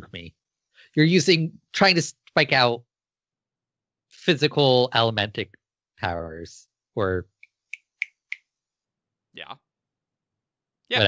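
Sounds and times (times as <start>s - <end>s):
man saying yeah: 0.0s - 0.3s, 4.3s - 5.4s, 6.0s - 7.2s.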